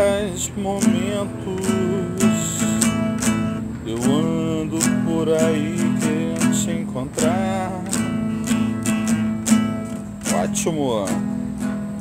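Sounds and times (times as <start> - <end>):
nylon-string guitar strummed: 0.0 - 12.0.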